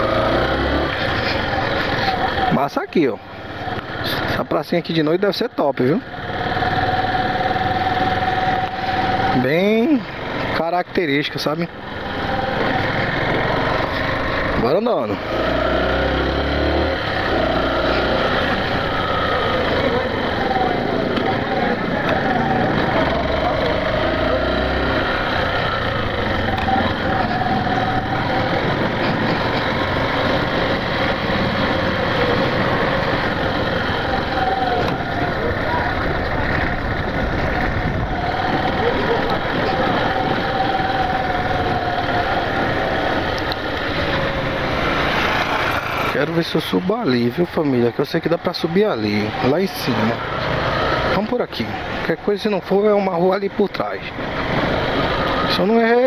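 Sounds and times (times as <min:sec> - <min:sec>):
motorcycle engine running: 0:00.0 - 0:56.0
road and wind noise: 0:00.0 - 0:56.0.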